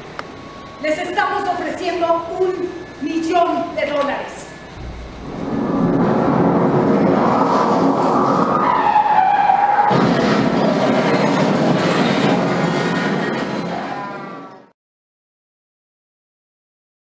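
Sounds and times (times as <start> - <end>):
loud rushing noise: 4.7 - 13.9.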